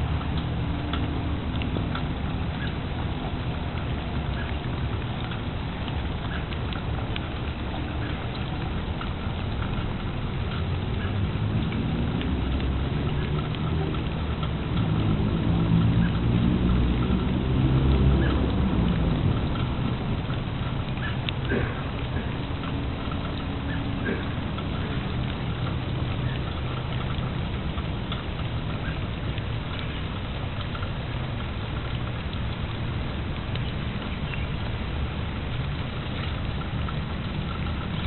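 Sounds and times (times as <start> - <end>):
low drawn-out rumble: 0.0 - 38.0
steady rain patter: 0.0 - 38.0.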